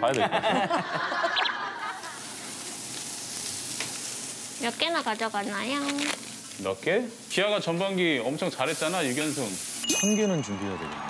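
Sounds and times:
food sizzling on griddle: 1.7s - 10.6s.

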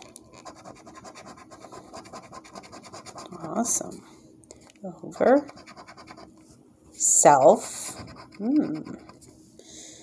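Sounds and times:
coin scratching lottery ticket: 0.4s - 3.2s, 5.3s - 6.3s.

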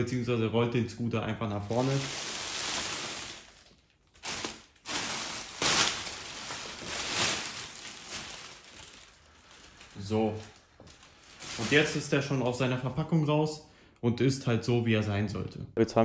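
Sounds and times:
plastic film crinkling: 1.6s - 12.5s.

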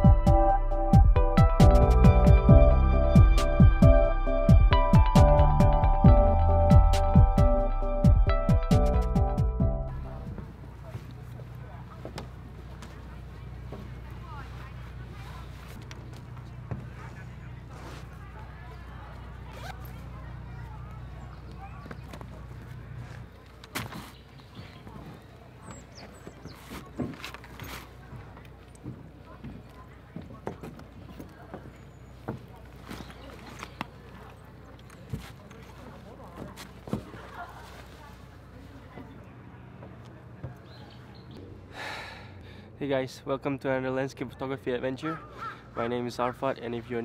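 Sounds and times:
zipper pulled open: 19.5s - 20.0s
man breathing in: 41.7s - 42.8s.

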